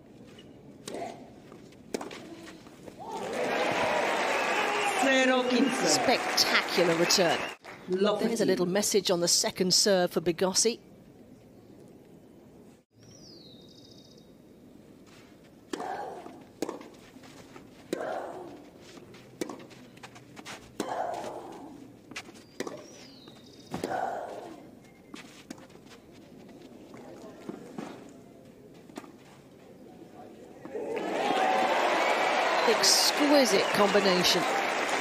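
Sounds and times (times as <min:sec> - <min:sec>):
racket striking tennis ball: 0:01.9 - 0:02.2, 0:15.7 - 0:17.0, 0:19.4 - 0:19.8, 0:22.6 - 0:23.1.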